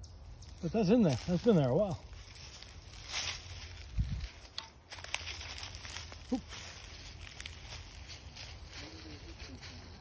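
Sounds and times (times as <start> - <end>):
footsteps through dry leaves: 0.1 - 10.0
small crackles: 0.4 - 9.9.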